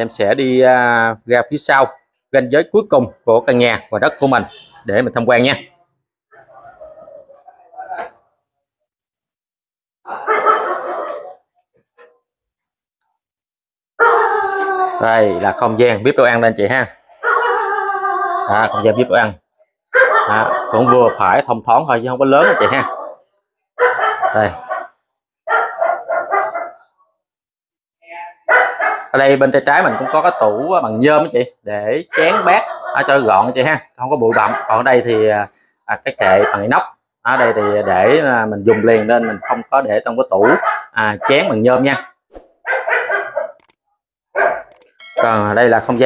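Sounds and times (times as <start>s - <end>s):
dog barking: 6.3s - 8.2s, 10.1s - 11.4s, 14.0s - 15.7s, 17.2s - 17.8s, 18.5s - 19.1s, 19.9s - 21.5s, 22.2s - 27.0s, 28.4s - 30.9s, 32.0s - 33.6s, 34.2s - 35.6s, 36.2s - 43.7s, 44.3s - 45.5s.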